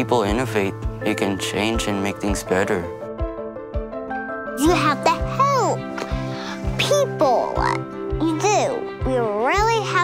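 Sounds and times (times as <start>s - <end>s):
background music with low beat: 0.0s - 4.9s.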